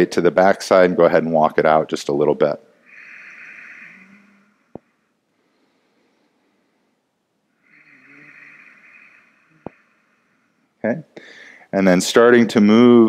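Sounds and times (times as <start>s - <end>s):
slow deep breathing: 2.7s - 11.7s.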